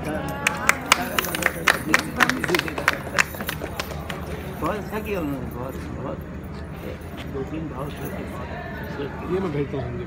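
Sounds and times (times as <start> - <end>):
hand claps: 0.4 - 4.4.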